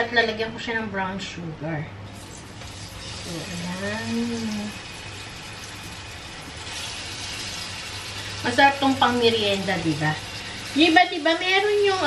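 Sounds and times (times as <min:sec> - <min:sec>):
banana slices sizzling in pan: 0:02.1 - 0:12.0.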